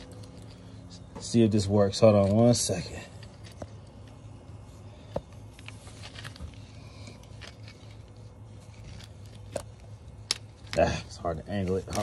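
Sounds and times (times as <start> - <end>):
fuel pumps humming: 0.0 - 12.0.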